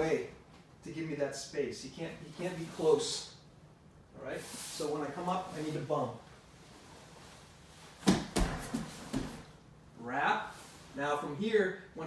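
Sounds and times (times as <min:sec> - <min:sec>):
hand posting on mat: 0:08.0 - 0:09.5
bodies thumping on foam mat: 0:08.0 - 0:09.6.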